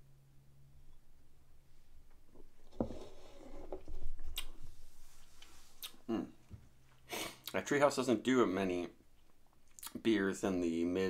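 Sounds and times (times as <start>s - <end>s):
mouth sounds tasting and swallowing: 9.2s - 10.0s.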